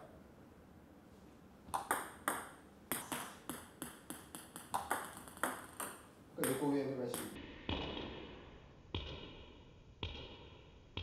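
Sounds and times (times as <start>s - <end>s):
table tennis ball pinging: 1.7s - 11.0s.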